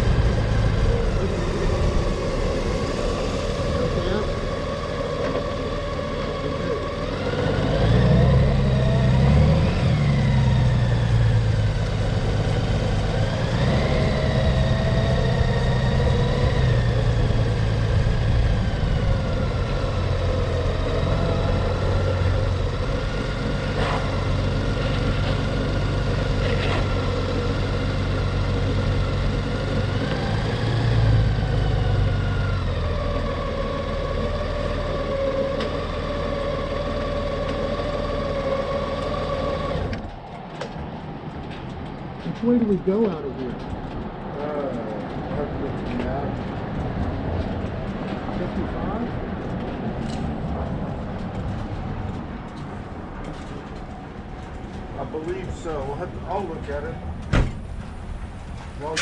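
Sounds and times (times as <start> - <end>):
motorcycle engine accelerating: 0.0 - 40.2.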